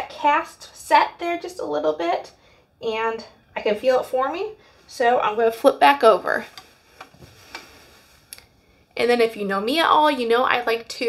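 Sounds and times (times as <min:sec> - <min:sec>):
soft rustling: 0:06.0 - 0:08.8.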